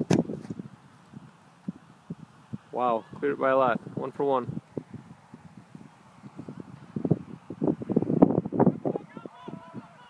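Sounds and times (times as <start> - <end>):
foot kicking a football: 0.0 - 0.7.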